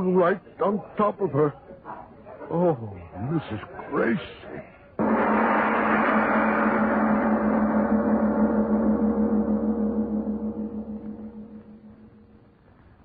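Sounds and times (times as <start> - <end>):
gong ringing: 5.0 - 12.5.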